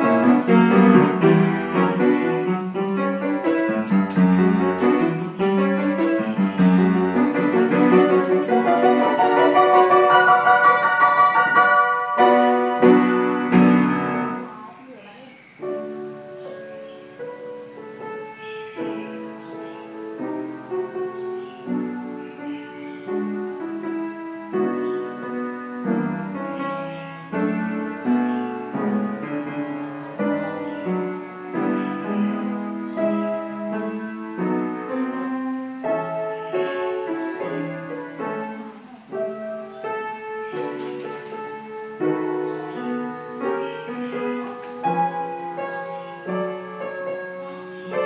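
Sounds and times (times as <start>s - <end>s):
piano chords: 0.0s - 48.0s.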